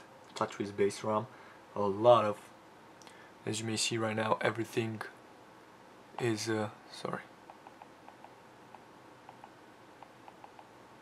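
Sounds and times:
faint ticks: 7.5s - 10.7s.

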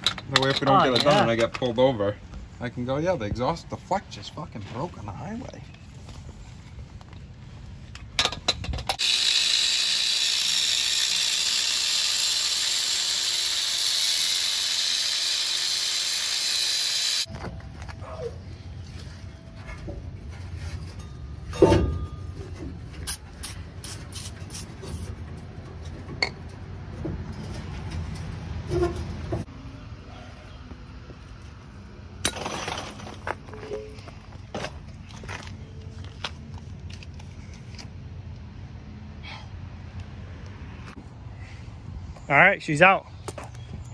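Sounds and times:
hand tools clicking and scraping: 0.0s - 1.7s, 7.8s - 18.2s.

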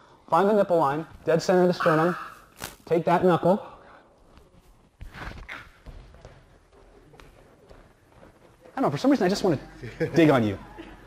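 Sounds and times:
footsteps shuffling on gym mat: 4.1s - 9.7s.

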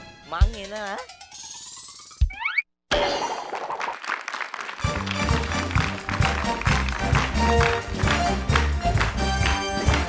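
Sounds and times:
busy jingle music: 4.8s - 10.0s.

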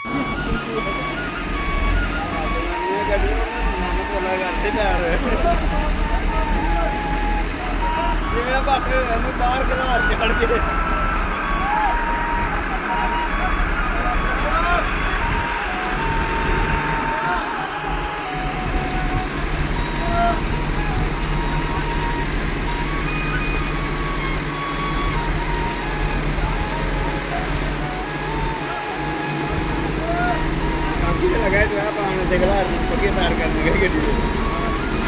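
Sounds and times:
excavator engine humming: 0.0s - 35.0s
people talking and calling out: 0.0s - 35.0s.

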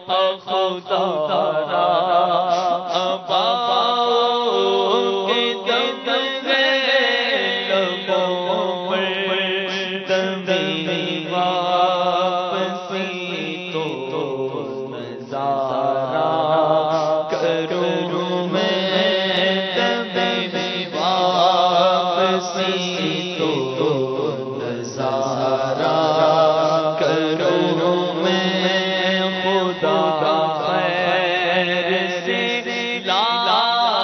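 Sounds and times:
man singing: 0.0s - 34.0s.

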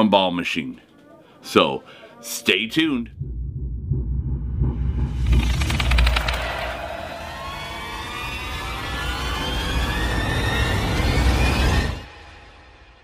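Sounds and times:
deep rumble: 3.1s - 7.8s
rising pitched whine: 3.1s - 12.5s
brief rattle: 5.2s - 6.9s.

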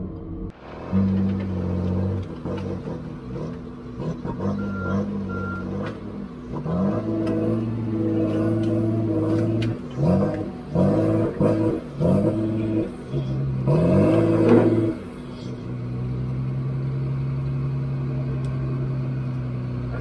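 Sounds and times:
diesel engine revving: 0.0s - 20.0s.

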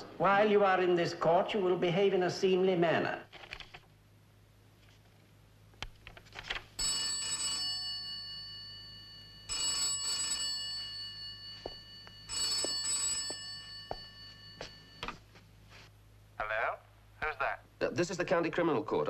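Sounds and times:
telephone bell ringing: 6.8s - 15.4s.

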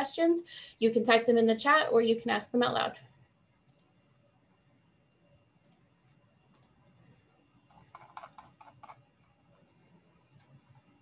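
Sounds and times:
computer keyboard typing: 6.5s - 6.8s, 7.6s - 9.3s.

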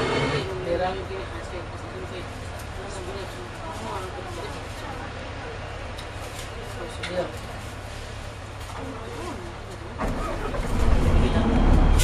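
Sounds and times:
diesel bus engine idling: 0.0s - 12.0s.

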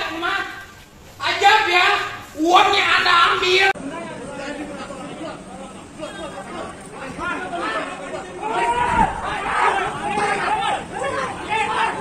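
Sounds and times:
crowd shouting: 1.4s - 12.0s.

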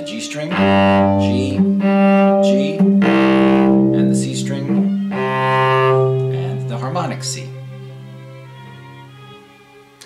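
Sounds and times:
bowed cello notes: 0.0s - 10.0s.

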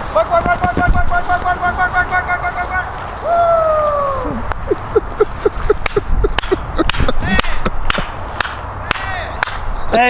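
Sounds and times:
men whooping and calling out: 0.2s - 4.5s.

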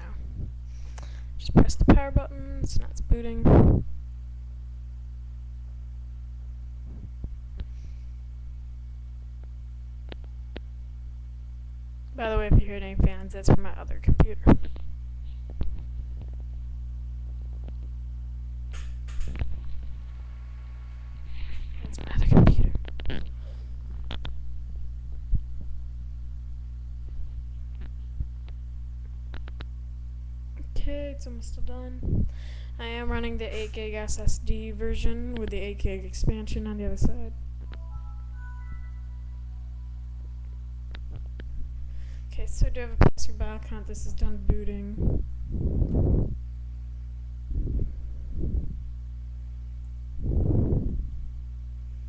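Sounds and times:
computer fans humming: 0.0s - 52.0s.

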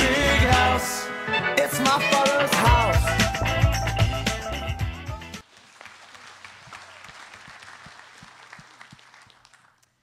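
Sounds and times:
loud music: 0.0s - 5.4s
congregation applauding: 5.4s - 10.0s.

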